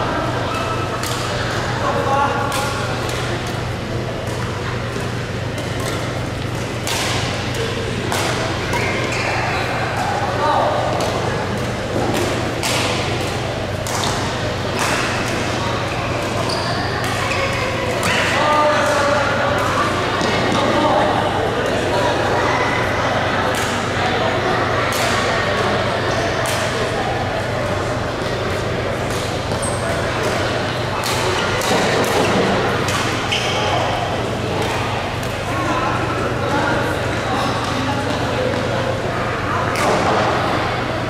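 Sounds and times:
players' voices: 0.0s - 41.0s
rackets striking shuttlecocks: 4.2s - 9.3s, 10.8s - 17.3s.

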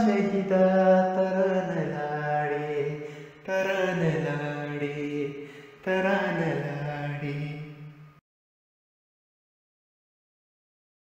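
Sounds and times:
man chanting a melody: 0.0s - 7.9s.

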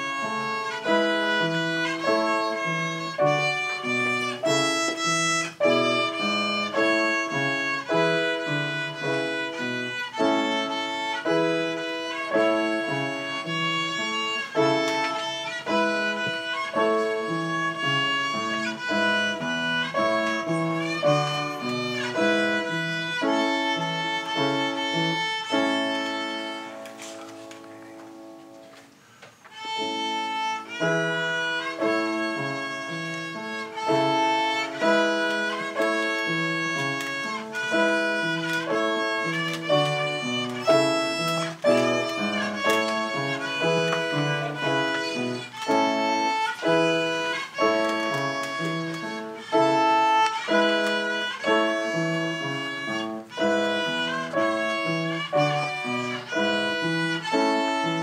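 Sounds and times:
violin melody: 0.0s - 58.0s.

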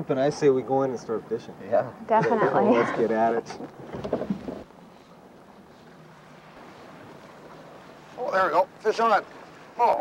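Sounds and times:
water noise: 0.0s - 10.0s
wind: 0.0s - 10.0s.

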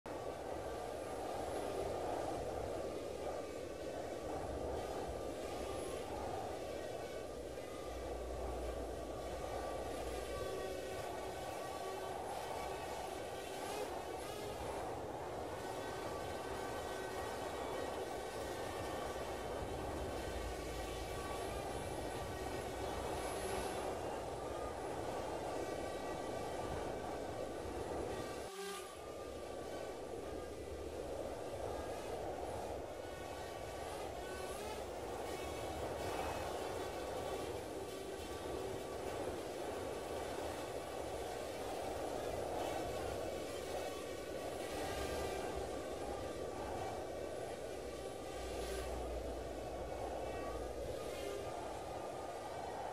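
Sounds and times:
faint high whine: 0.1s - 52.9s
mechanical hum: 0.1s - 52.9s.

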